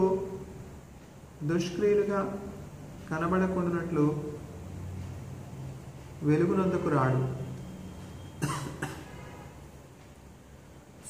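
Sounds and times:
man reading aloud: 0.0 - 0.7, 1.4 - 4.6, 6.2 - 7.6
man coughing: 8.4 - 9.3.

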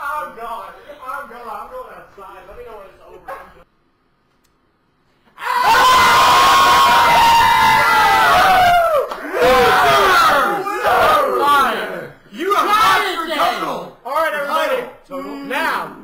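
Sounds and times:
group cheering and yelling: 5.3 - 16.0.

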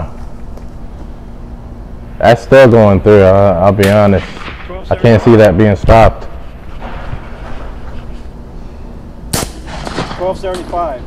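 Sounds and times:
shotgun shot: 3.8 - 4.9, 9.3 - 10.6.

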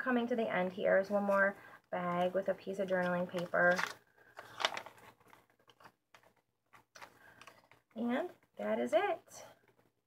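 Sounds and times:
paper pages rustling: 1.2 - 7.9.

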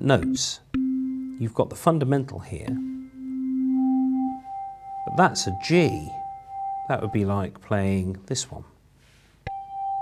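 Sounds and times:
organ higher pure tone: 0.0 - 1.6, 2.6 - 7.4
organ low pure tone: 0.0 - 1.7, 2.6 - 7.5.

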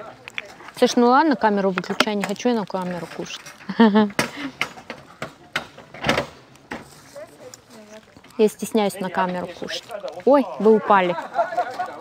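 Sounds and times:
people's voices: 0.0 - 12.0
sharp knocks and clicks: 4.1 - 6.9.

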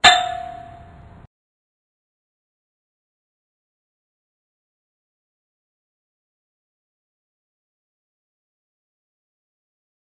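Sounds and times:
metallic clang with ringing tone: 0.0 - 1.1.

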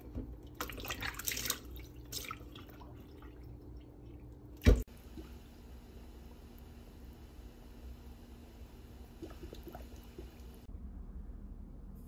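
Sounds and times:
water sloshing in a bowl: 0.0 - 4.8
small water splash: 0.6 - 3.5.

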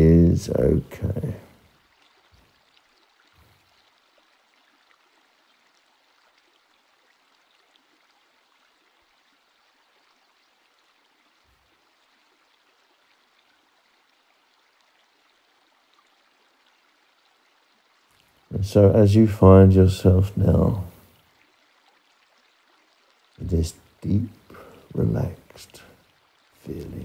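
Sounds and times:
faint steady hiss: 0.0 - 27.0.

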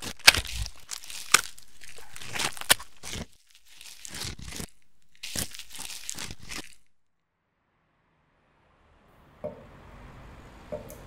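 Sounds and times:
dry crackling and crinkling: 0.0 - 7.1.

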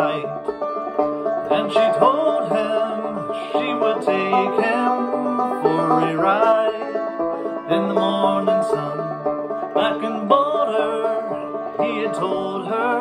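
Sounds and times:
resonator banjo picking: 0.0 - 13.0.

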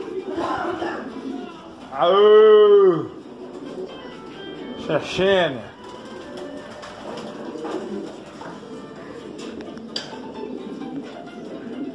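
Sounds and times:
pigeons cooing: 0.0 - 11.9.

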